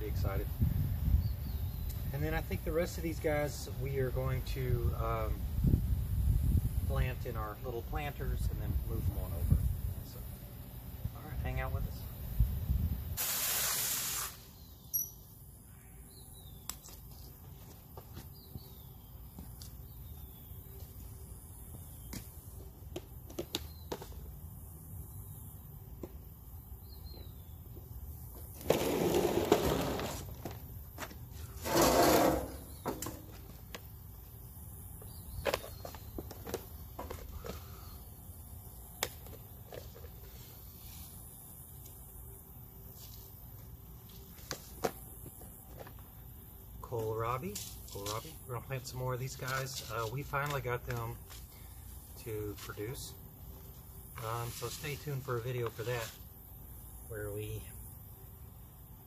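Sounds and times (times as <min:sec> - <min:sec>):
rustling hiss bursts: 0:13.1 - 0:14.7, 0:40.2 - 0:41.9.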